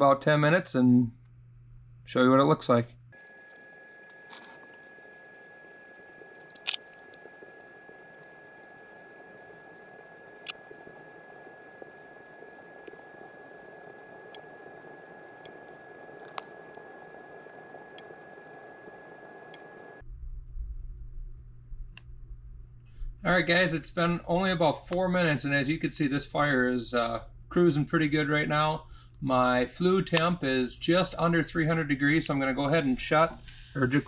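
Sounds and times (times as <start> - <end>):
low hum: 2.9 - 24.6
fire burning in a stove: 3.2 - 20.0
high whine: 3.2 - 20.0.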